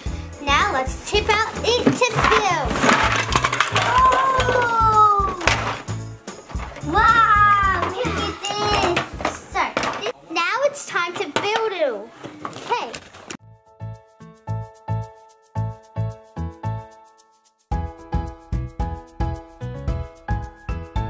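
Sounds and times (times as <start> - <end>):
background music with steady beat: 0.0 - 2.0, 3.9 - 10.0, 13.4 - 21.0
children calling out: 3.8 - 5.6, 6.8 - 9.8.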